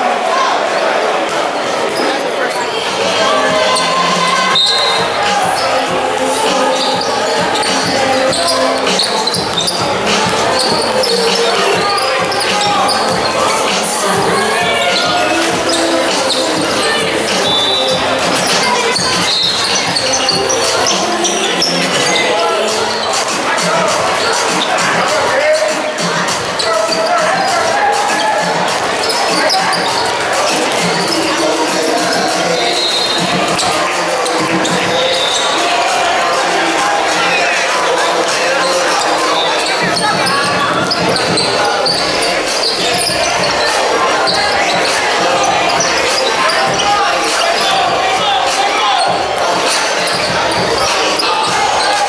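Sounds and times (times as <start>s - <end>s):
music playing in hall: 0.0s - 52.0s
people talking and calling out: 0.0s - 52.0s
basketball bouncing on court: 6.9s - 13.4s, 39.8s - 43.6s.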